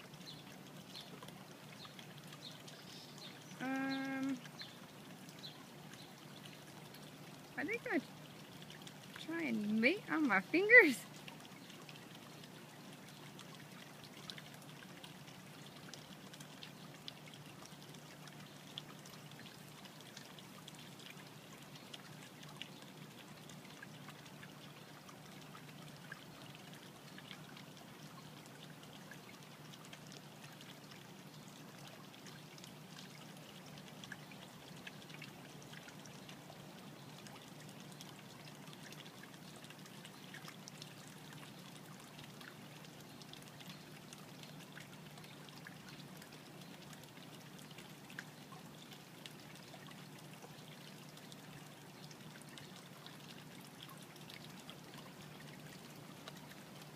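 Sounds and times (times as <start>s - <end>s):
faint steady hiss: 0.0s - 56.9s.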